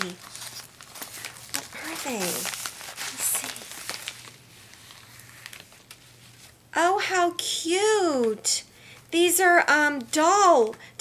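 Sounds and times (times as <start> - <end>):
paper and plastic packaging rustling: 0.0 - 6.7.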